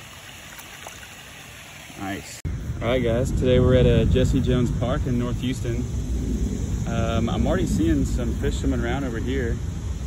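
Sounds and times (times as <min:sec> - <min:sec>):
water trickling into pond: 0:00.0 - 0:03.2.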